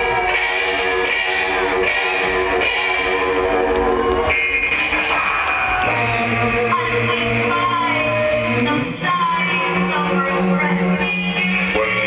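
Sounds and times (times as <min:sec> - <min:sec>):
electric guitar: 0:00.0 - 0:12.0
live band playing over speakers: 0:00.0 - 0:12.0.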